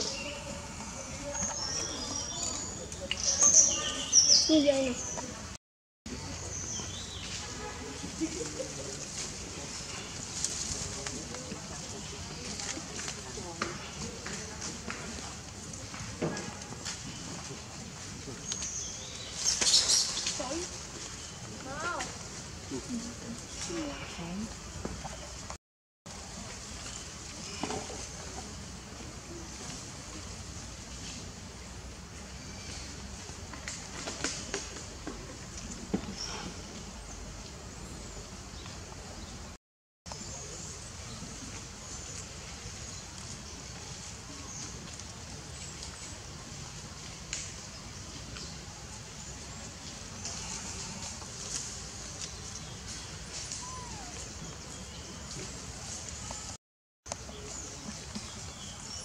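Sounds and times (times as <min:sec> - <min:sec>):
faint animal calls: 0:53.3 - 0:54.7.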